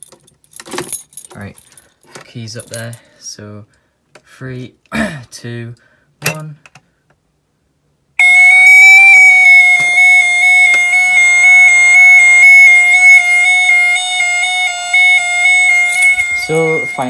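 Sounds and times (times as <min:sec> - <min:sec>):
fire alarm sounder: 0:08.2 - 0:17.0.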